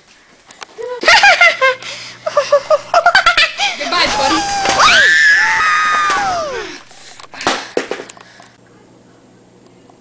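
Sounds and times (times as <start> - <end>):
person screaming: 3.8 - 6.8.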